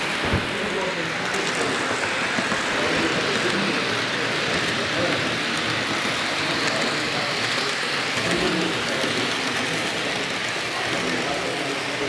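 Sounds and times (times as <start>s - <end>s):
indistinct voices murmuring: 0.0s - 12.0s.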